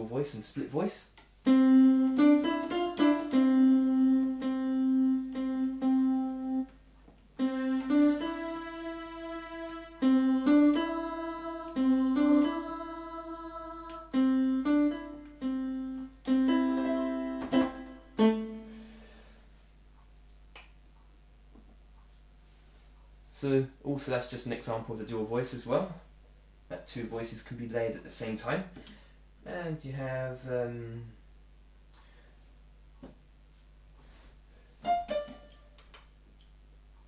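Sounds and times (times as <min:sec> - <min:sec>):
electronic keyboard melody: 0:01.4 - 0:06.8, 0:07.4 - 0:19.1, 0:34.8 - 0:35.9.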